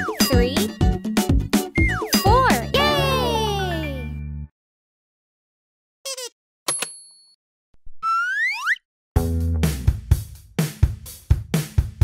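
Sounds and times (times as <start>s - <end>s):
upbeat children's music: 0.0s - 4.2s.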